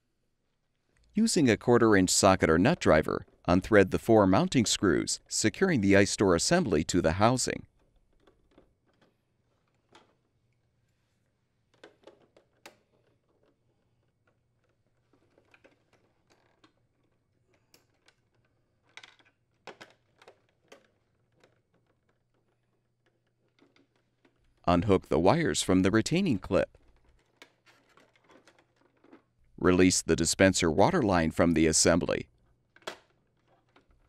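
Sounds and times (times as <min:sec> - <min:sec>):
hands handling plastic parts: 0:07.6 - 0:25.1, 0:26.0 - 0:29.6, 0:32.3 - 0:34.0.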